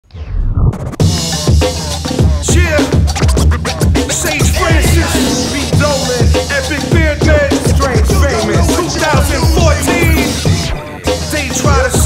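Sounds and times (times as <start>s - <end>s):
turntable scratches: 0.1s - 12.0s
heavy kick drum: 4.4s - 10.6s.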